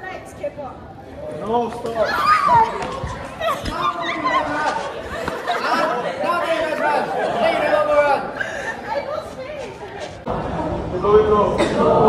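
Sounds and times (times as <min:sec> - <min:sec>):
group chatter: 0:00.0 - 0:12.0.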